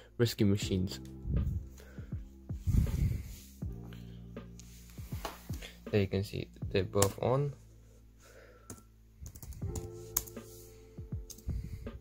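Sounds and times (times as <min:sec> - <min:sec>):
background music with held notes: 0:00.0 - 0:12.0
fingers typing on laptop keyboard: 0:08.7 - 0:10.4.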